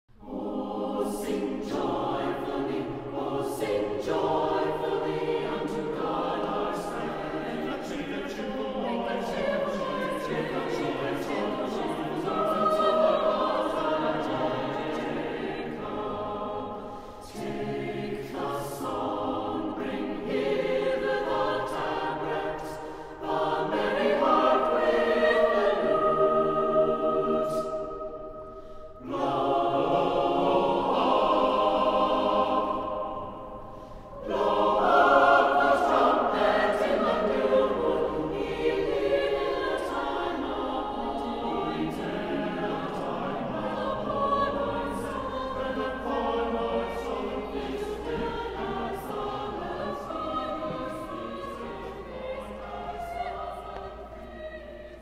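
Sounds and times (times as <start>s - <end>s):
choir singing: 0.1s - 55.0s.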